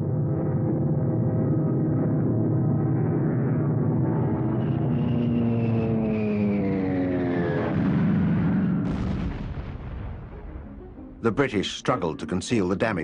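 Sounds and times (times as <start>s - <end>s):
warplane engine drone diving: 0.0s - 13.0s
bomb explosion: 7.7s - 11.1s.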